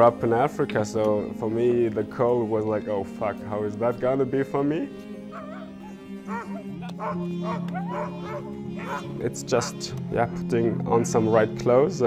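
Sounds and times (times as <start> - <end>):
low music drone: 0.0 - 12.0
dogs barking and yipping: 5.2 - 9.1.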